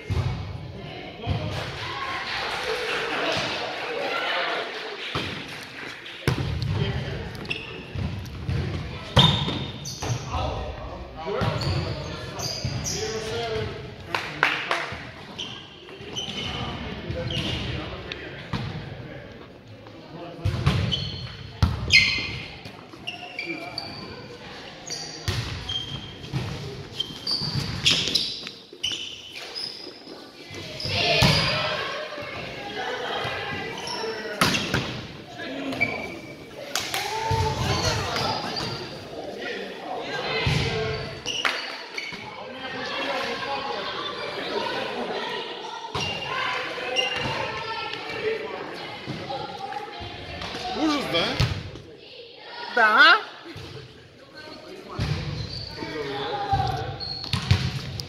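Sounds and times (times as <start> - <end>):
players' voices: 0.0 - 58.0
sneaker squeaks: 7.3 - 10.4, 11.3 - 13.6, 15.3 - 17.8, 20.4 - 39.2, 40.4 - 45.0, 45.6 - 48.2, 53.6 - 58.0
volleyball smacks and bounces: 57.2 - 58.0.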